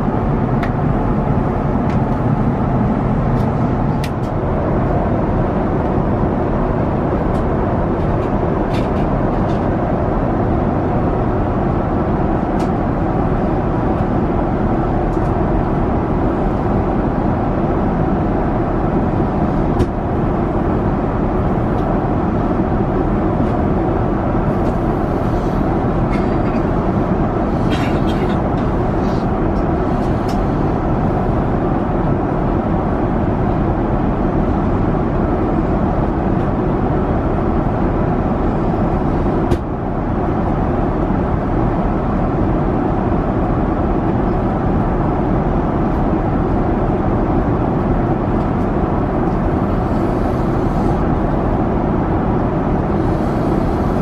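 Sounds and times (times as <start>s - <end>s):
airliner cabin engine and airflow noise: 0.0s - 54.0s.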